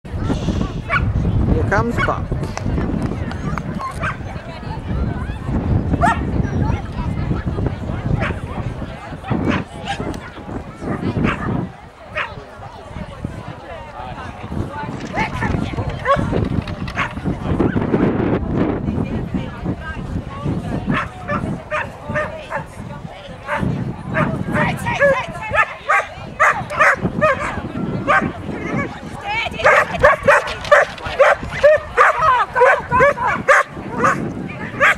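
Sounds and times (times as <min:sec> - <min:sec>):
people talking: 0:00.1 - 0:34.9
dogs barking: 0:25.0 - 0:28.9, 0:29.6 - 0:34.9.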